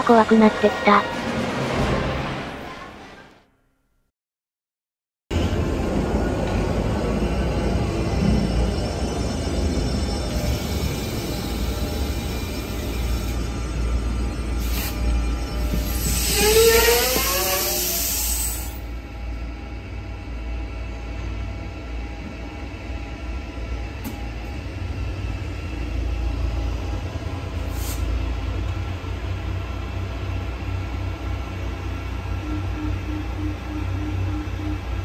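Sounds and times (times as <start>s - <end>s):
metro train low rumble: 0.0s - 3.5s, 5.3s - 35.0s
short beeps: 32.4s - 35.0s.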